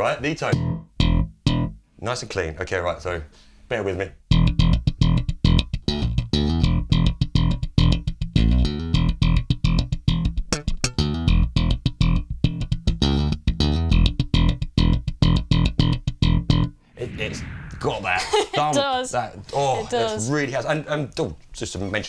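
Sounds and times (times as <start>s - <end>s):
slap bass guitar line: 0.5s - 1.8s, 4.3s - 18.3s.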